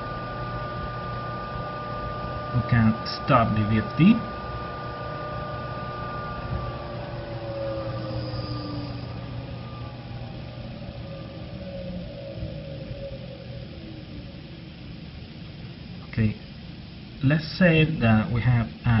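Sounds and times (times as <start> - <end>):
electric motor whine falling: 0.0 - 17.2
low hum: 0.0 - 19.0.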